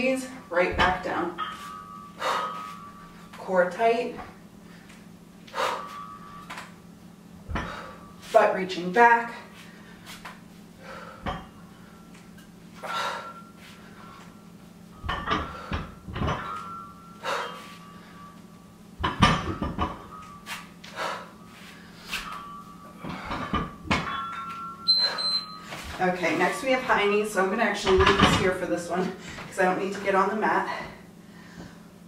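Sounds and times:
barbell clunking and knocking: 0.6s - 2.9s, 7.4s - 8.0s, 11.2s - 11.6s, 15.0s - 17.6s, 19.0s - 20.4s, 22.2s - 27.0s, 27.8s - 28.9s
short high timer beep: 24.9s - 25.6s.

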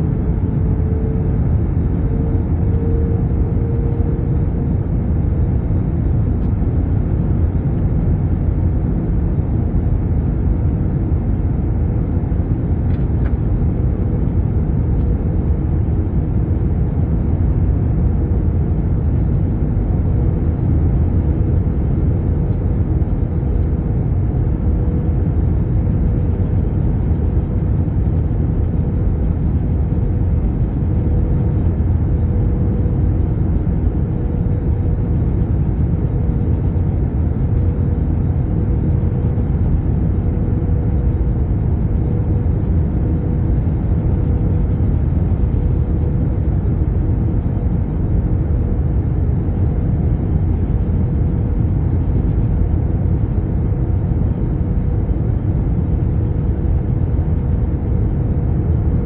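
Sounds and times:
airplane cabin engine rumble: 0.0s - 59.0s
faint steady hum: 0.0s - 59.0s.

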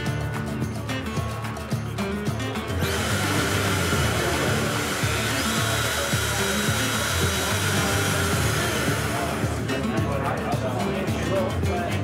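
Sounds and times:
router motor high whine: 2.8s - 9.8s.

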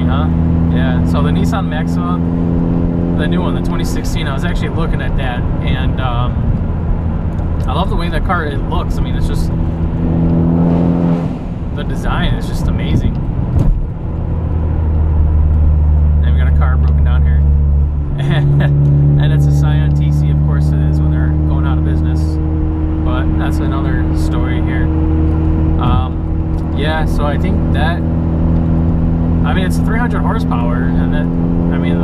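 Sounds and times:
car engine droning in cabin: 0.0s - 32.0s.

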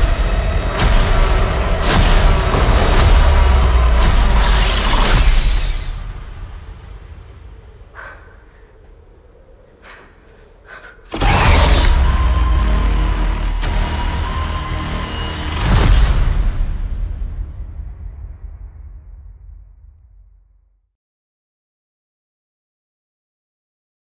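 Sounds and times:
heavy boom: 0.0s - 7.8s, 11.1s - 20.5s
deep rumble: 0.0s - 14.8s.

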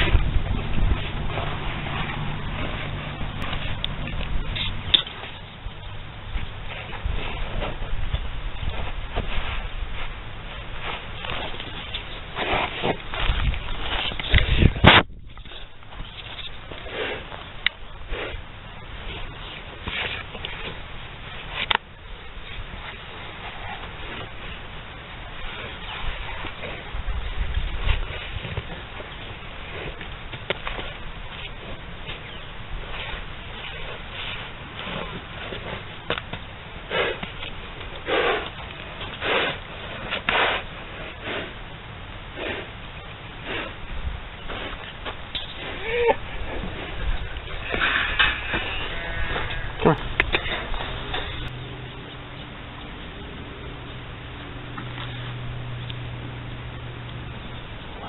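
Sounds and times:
hooves scraping dirt: 0.0s - 58.0s
bull calls: 45.6s - 51.5s.

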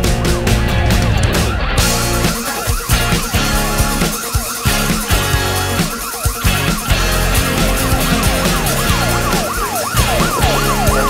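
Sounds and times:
rock band music: 0.0s - 11.0s
police siren sweeping: 1.1s - 11.0s.

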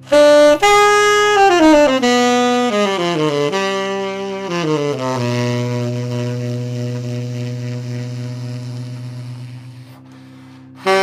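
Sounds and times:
saxophone long low note: 0.0s - 11.0s.

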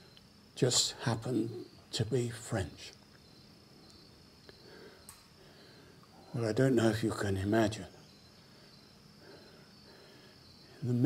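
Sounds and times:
crickets chirring: 0.0s - 11.0s
man speaking: 0.6s - 3.0s, 6.3s - 8.0s, 10.8s - 11.0s.

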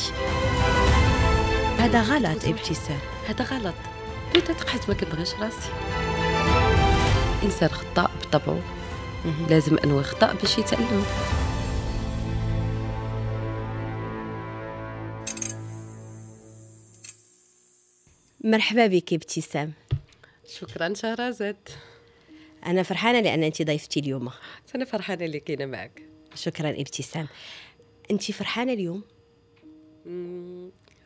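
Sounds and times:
high ringing tone: 15.3s - 18.6s
woman humming: 30.0s - 31.0s.

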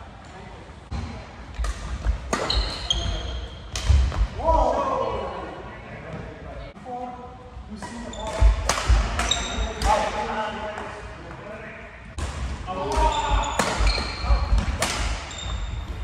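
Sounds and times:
voices in a hall: 0.0s - 15.2s
shoes squeaking: 2.3s - 3.6s, 15.2s - 16.0s.

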